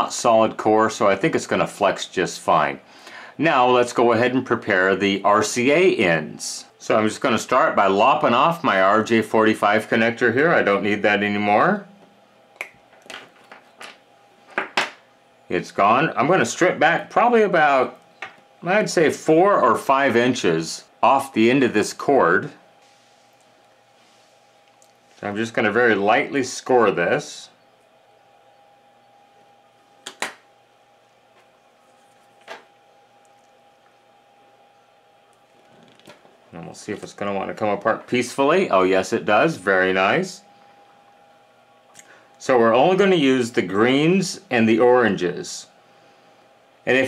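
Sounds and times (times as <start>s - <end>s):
faint steady hum: 0.0s - 47.0s.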